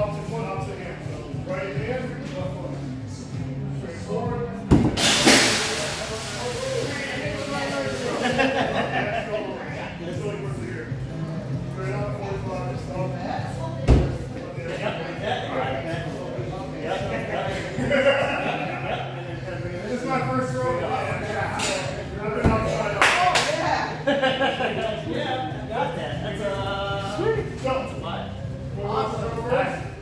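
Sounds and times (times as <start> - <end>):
crowd chatter: 0.0 - 30.0.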